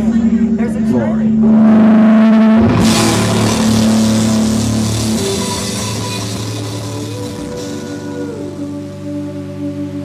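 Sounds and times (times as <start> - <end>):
distorted guitars and bass: 0.0 - 10.0
drums and cymbals: 2.7 - 9.0.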